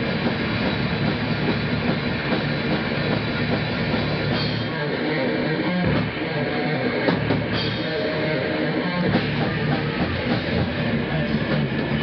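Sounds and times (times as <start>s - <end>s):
metal band playing live: 0.0s - 12.0s
rapid drum strokes: 0.0s - 12.0s.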